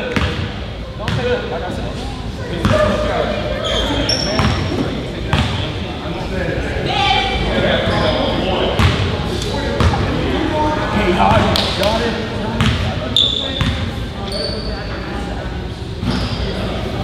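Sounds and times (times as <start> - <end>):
murmur of voices: 0.0 - 17.0
sneaker squeaks: 2.6 - 5.6, 7.8 - 9.0, 12.6 - 15.1, 15.9 - 16.8.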